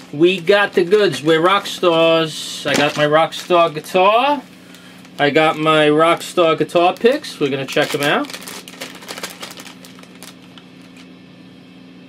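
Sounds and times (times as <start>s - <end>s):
plastic bag crinkling: 0.0s - 11.1s
low electrical hum: 0.0s - 12.0s.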